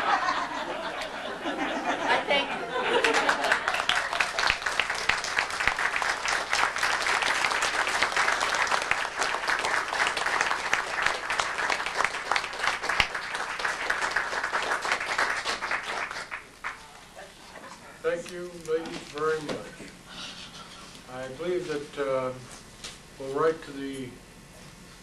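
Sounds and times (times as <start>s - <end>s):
audience applauding: 2.8s - 17.0s.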